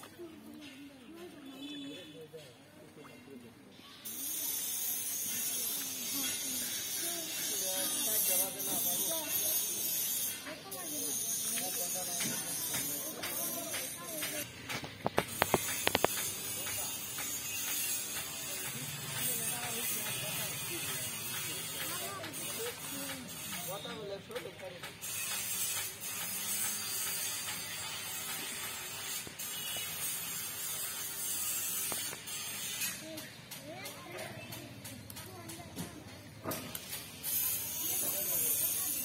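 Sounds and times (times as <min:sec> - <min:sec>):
voices: 0:00.0 - 0:28.9, 0:32.8 - 0:39.0
people talking indistinctly: 0:00.0 - 0:29.0, 0:32.0 - 0:39.0.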